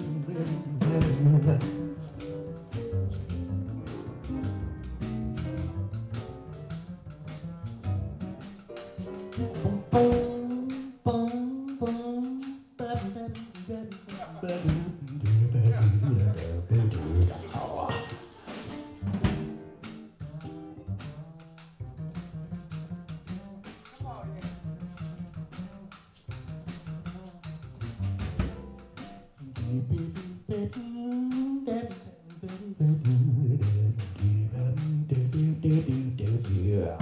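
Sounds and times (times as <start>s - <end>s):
man singing wordlessly: 0.0s - 3.1s, 9.2s - 18.7s, 20.2s - 28.1s, 29.3s - 37.0s
drum kit keeping time: 0.0s - 37.0s
upright double bass: 0.0s - 37.0s.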